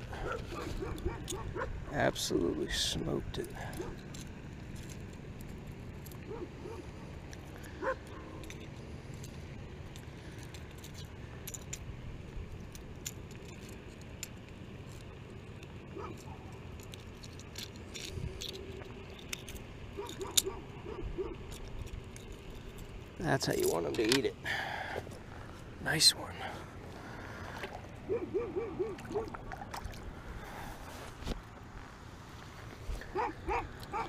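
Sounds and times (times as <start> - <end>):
metal hooks clicking and rattling: 2.8 - 6.3, 7.3 - 11.9, 12.6 - 20.6, 21.2 - 24.3.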